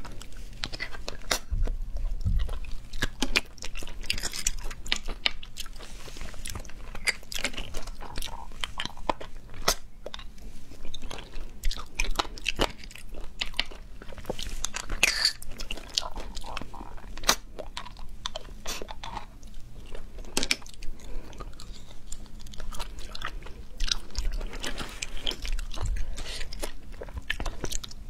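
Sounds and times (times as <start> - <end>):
chewing: 0.0 - 28.0.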